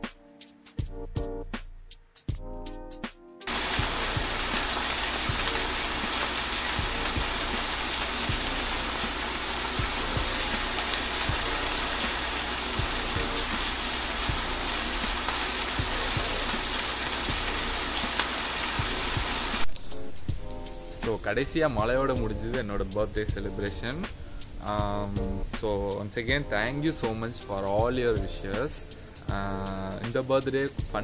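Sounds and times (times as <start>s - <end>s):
raindrops striking close by: 3.5s - 15.2s
heavy rain falling: 3.5s - 19.6s.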